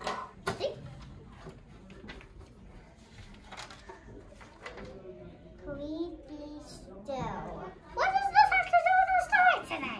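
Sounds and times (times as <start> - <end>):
paper rustling: 1.0 - 5.0.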